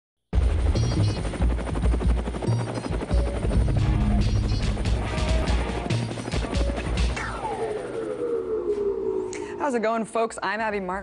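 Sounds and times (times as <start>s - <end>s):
helicopter rotor chop: 0.4s - 9.1s
music with deep bass: 3.1s - 7.5s.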